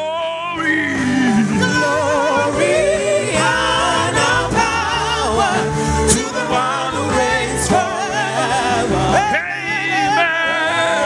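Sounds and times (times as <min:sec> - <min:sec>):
instrumental backing: 0:00.0 - 0:11.0
men singing gospel: 0:00.0 - 0:11.0.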